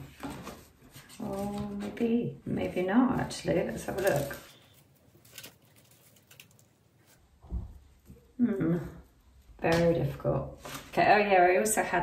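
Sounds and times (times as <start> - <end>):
stiff mesh fabric crackling: 3.6 - 7.3.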